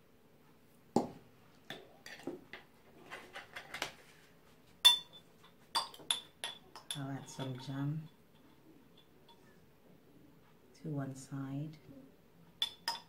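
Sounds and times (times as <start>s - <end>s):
glass clinks with ring: 4.9s - 7.5s, 12.6s - 13.0s.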